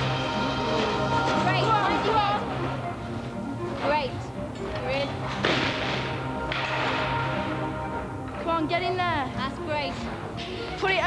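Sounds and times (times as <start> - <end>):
background music with low drone: 0.0 - 11.0.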